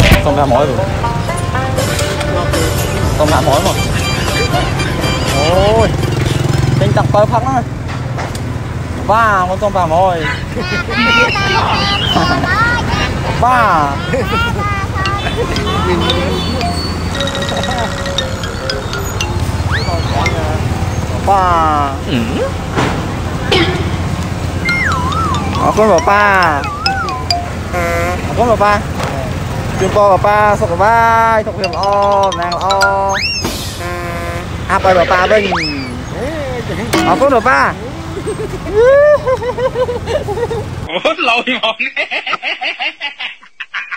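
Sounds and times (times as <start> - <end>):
men talking: 2.3 - 6.1, 6.7 - 7.8, 9.0 - 22.6, 24.8 - 33.4, 34.3 - 38.9
person speaking: 12.3 - 18.2, 25.2 - 28.6
held even tone: 14.2 - 21.2, 23.5 - 28.5, 31.5 - 33.9.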